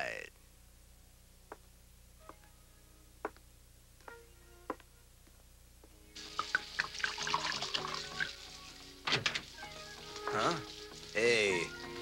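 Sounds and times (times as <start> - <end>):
background music: 2.1 - 3.3, 4.0 - 5.2, 5.8 - 12.0
wine pouring into a glass: 6.3 - 8.7.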